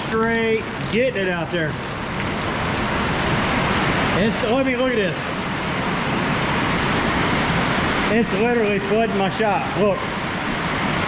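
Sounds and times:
heavy rain downpour: 0.0s - 8.9s.

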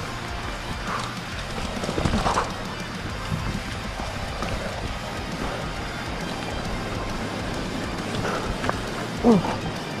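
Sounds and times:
background music: 0.0s - 10.0s
mountain bike rattling: 0.0s - 10.0s.

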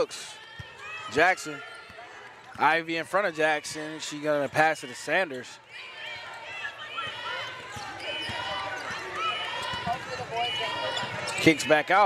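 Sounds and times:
sneakers squeaking on court: 6.9s - 11.7s.

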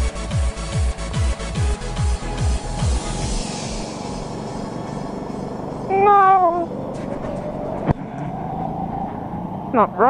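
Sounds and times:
go-kart engine running: 2.2s - 8.5s.

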